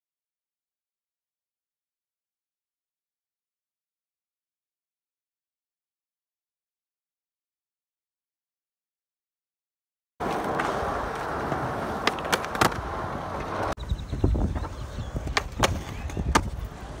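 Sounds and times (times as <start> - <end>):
skateboard clacks: 10.2 - 13.7, 14.5 - 17.0
skateboard wheels rolling on concrete: 10.2 - 17.0.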